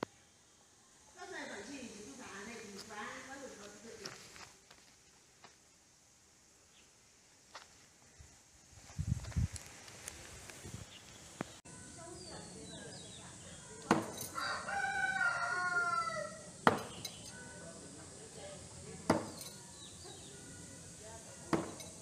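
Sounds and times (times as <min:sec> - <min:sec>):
knives thudding into wood: 0:13.8 - 0:14.4, 0:16.6 - 0:17.3, 0:19.1 - 0:19.6, 0:21.5 - 0:22.0
rooster crowing: 0:14.3 - 0:16.6.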